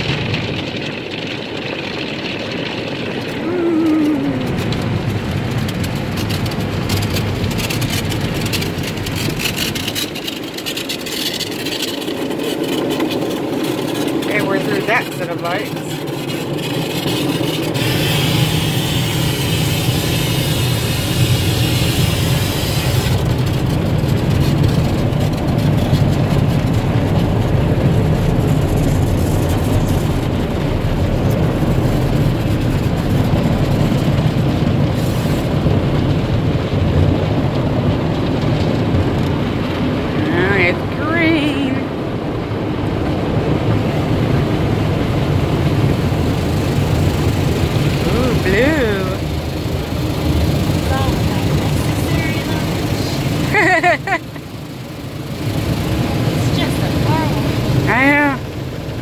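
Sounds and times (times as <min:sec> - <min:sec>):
steady low rumble: 0:00.0 - 0:59.0
water spray pelting car: 0:00.0 - 0:59.0.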